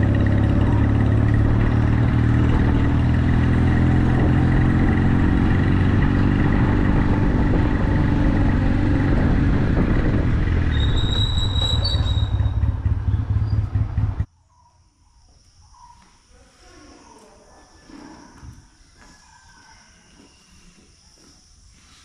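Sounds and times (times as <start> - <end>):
motorcycle engine running: 0.0 - 14.3
brief high-pitched squeal: 10.7 - 12.6.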